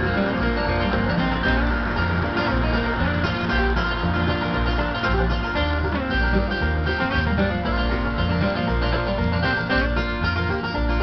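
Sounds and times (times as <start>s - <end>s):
bluegrass music on radio: 0.0s - 11.0s
flatpicked acoustic guitar: 0.0s - 11.0s.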